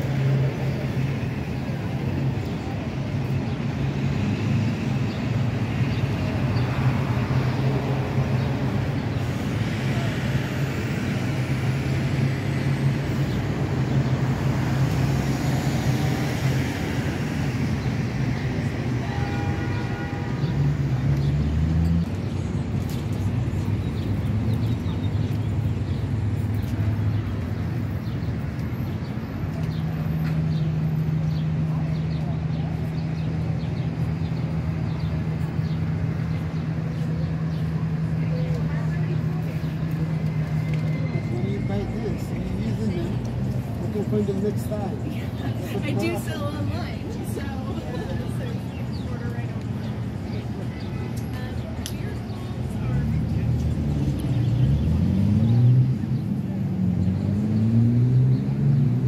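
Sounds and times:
city traffic rumble: 0.0s - 59.0s
faint voices of passers-by: 0.0s - 59.0s.

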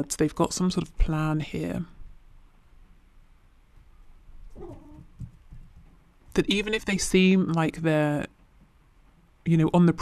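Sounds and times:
cat meowing faintly: 4.5s - 5.2s.

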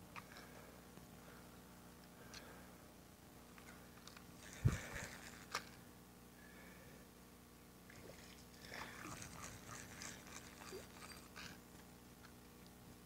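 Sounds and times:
fishing reel clicks: 4.1s - 5.8s, 9.0s - 11.6s.

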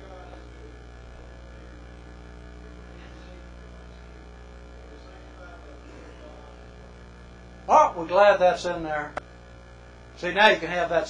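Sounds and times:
electrical mains hum: 0.0s - 11.0s
man speaking loudly: 7.7s - 9.2s, 10.2s - 11.0s.

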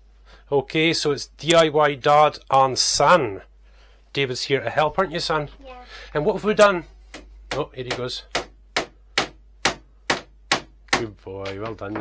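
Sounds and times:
hammer striking nail into wood: 7.1s - 12.0s.

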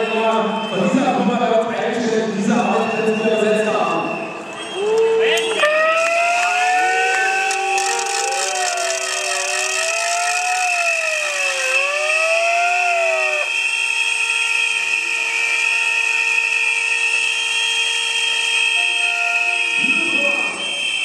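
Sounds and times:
shrill whistling: 2.8s - 13.7s
siren-like swooping tone: 5.6s - 13.6s.

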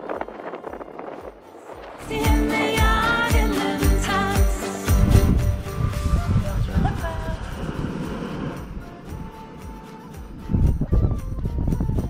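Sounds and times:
wind buffeting microphone: 0.0s - 2.0s, 5.0s - 12.0s
low pulses: 4.9s - 11.4s.

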